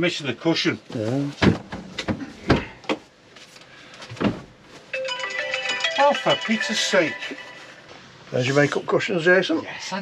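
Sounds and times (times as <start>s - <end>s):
music with bright ringing tones: 4.9s - 8.1s.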